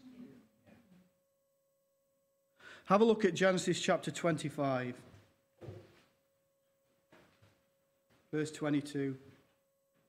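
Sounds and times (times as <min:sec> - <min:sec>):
voice echoing in room: 0:02.6 - 0:05.3.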